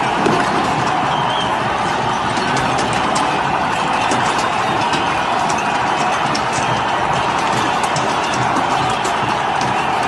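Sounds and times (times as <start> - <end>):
large crowd din: 0.0 - 10.0.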